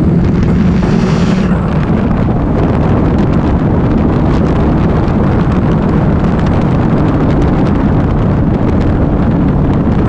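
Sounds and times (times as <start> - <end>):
motorcycle engine running: 0.0 - 10.0
wind rush on microphone: 0.0 - 10.0.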